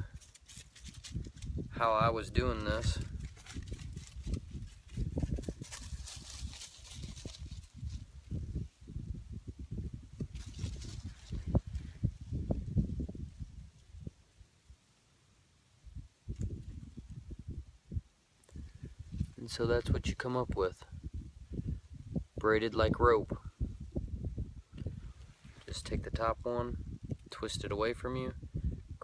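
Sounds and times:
bark rustling: 2.7 - 8.0.

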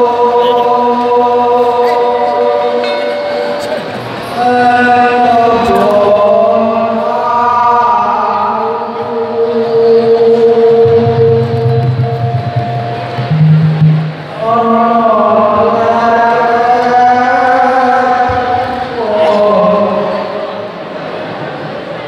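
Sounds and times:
man singing into a microphone: 0.0 - 13.6, 14.3 - 20.7
low steady tone: 10.7 - 14.4.

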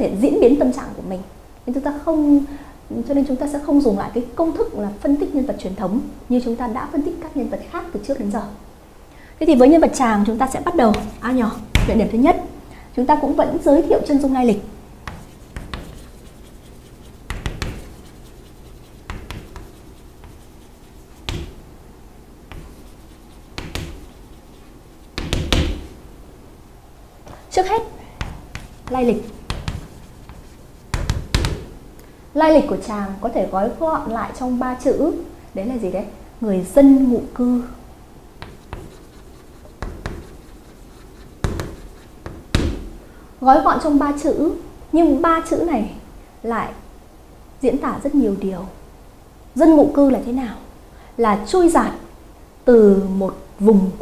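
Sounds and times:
pen tapping and scratching: 10.8 - 12.0, 15.0 - 21.6, 22.5 - 26.0, 28.2 - 31.7, 38.4 - 42.8.

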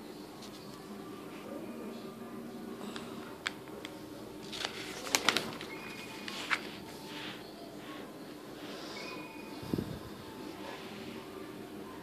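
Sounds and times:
paper pages snapping and rustling: 3.4 - 6.8.

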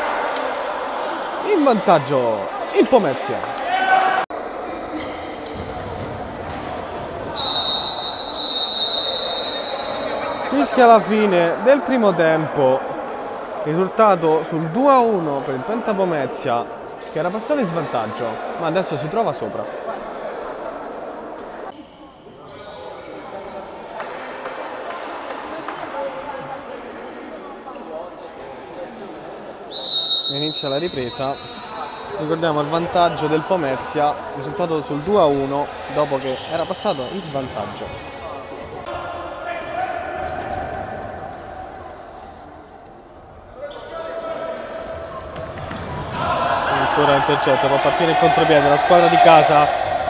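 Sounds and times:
sports hall noise: 0.0 - 50.0
referee's whistle long blast: 7.4 - 10.3, 29.7 - 32.0.

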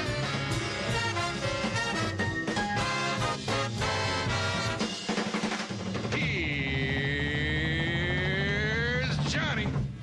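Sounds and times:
big-band theme music: 0.0 - 10.0
drum roll: 0.0 - 10.0.

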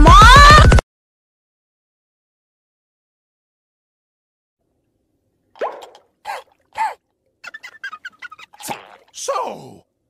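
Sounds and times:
hollow mouth pop: 5.6 - 6.0.

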